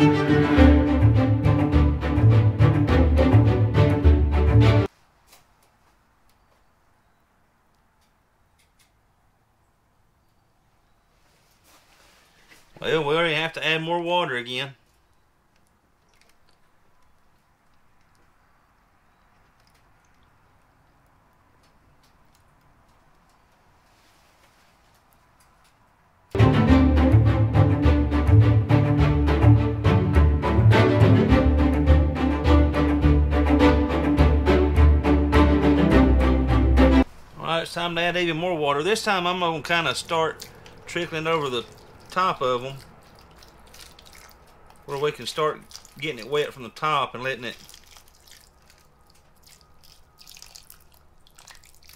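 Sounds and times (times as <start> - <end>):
water trickling: 14.9 - 22.6, 38.5 - 51.9.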